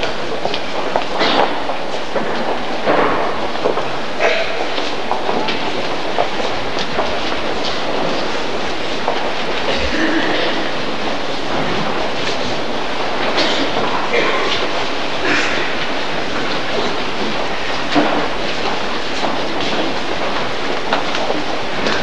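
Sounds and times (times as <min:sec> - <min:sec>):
shuffling footsteps: 0:00.0 - 0:22.0.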